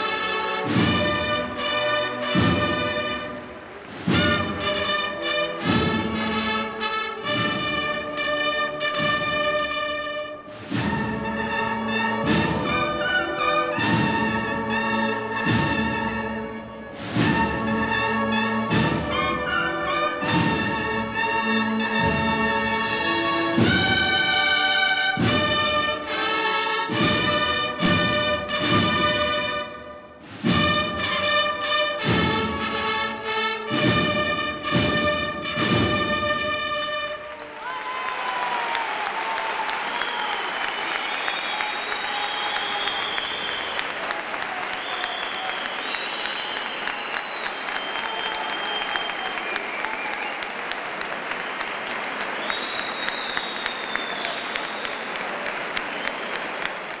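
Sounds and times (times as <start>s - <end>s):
cheering: 0.0s - 5.3s, 37.0s - 57.0s
audience applauding: 0.0s - 6.8s, 37.0s - 57.0s
brass chords: 0.0s - 37.7s
drum strokes: 0.4s - 6.6s, 10.5s - 13.0s.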